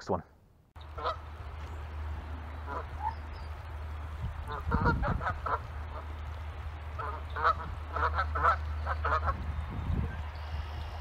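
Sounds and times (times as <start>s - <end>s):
geese honking: 0.8s - 9.5s.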